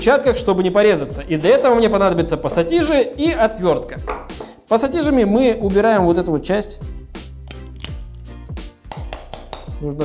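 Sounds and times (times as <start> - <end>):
background music with beat: 0.0 - 10.0.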